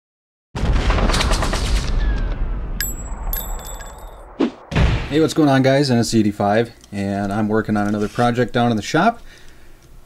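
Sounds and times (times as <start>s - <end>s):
ringing metallic pings: 2.8s - 4.2s.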